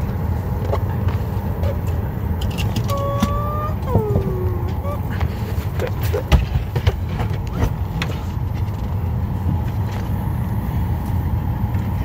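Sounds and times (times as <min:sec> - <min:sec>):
airliner cabin rumble: 0:00.0 - 0:12.0
voice sounding drawn-out notes: 0:02.9 - 0:05.2.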